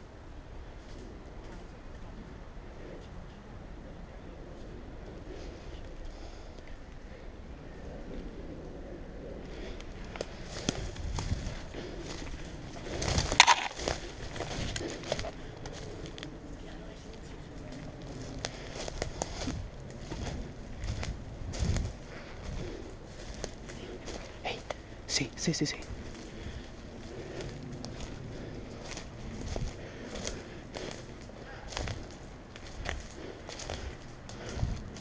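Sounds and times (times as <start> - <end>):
footsteps crunching through dry leaves: 10.2 - 24.7, 25.9 - 35.0.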